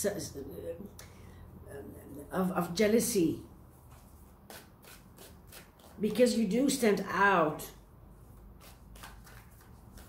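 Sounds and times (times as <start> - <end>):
cards being shuffled: 3.9 - 6.2, 8.4 - 10.0.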